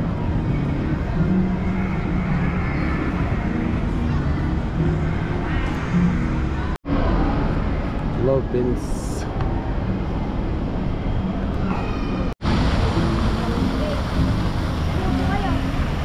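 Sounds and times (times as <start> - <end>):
faint music: 0.0 - 16.0
hubbub of voices: 0.0 - 16.0.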